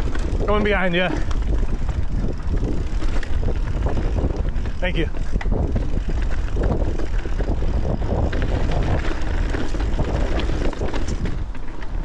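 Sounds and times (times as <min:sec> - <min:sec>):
bike rattles and clicks: 0:00.0 - 0:12.0
tyres rolling over rocky ground: 0:00.0 - 0:12.0
wind buffeting microphone: 0:00.0 - 0:12.0.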